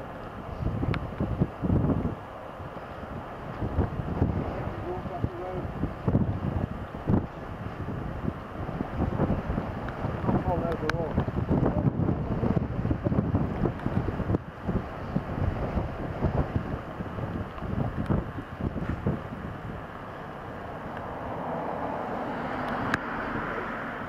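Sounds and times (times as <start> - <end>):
gusty wind buffeting microphone: 0.0 - 24.0.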